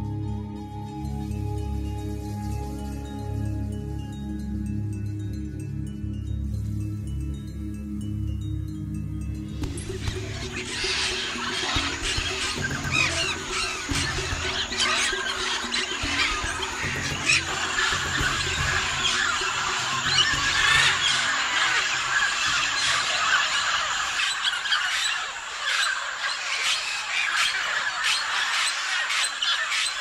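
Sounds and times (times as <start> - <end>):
soft background music: 0.0 - 24.4
parrots calling: 9.6 - 30.0.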